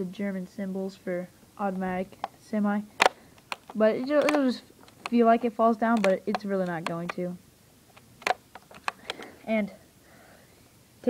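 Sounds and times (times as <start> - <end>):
airsoft rifle clicks: 3.0 - 7.3, 7.9 - 9.3.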